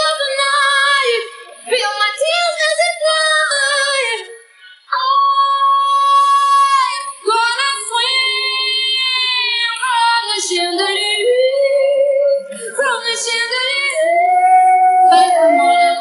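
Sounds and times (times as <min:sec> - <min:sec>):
woman singing high notes: 0:11.1 - 0:16.0.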